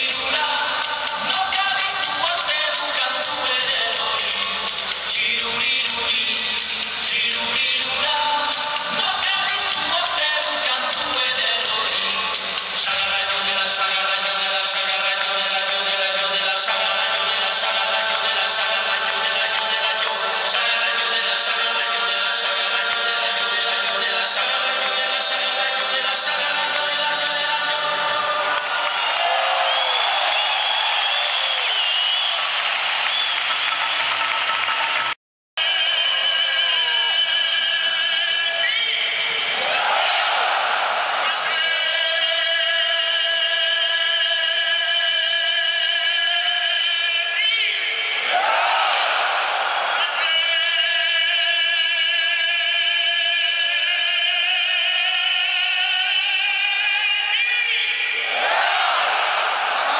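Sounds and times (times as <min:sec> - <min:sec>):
singing and music over loudspeakers: 0:00.0 - 0:32.4, 0:33.1 - 0:59.9
crowd noise: 0:00.0 - 0:59.9.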